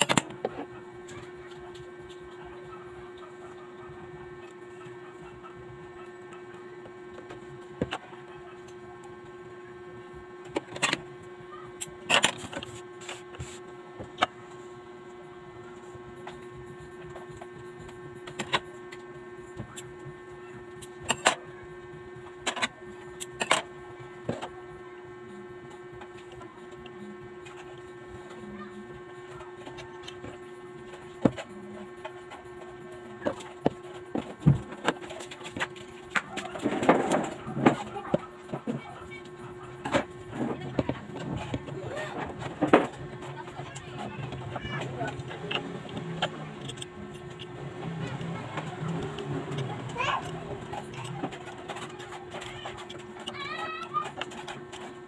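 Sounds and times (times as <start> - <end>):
electrical hum: 0.0 - 55.0.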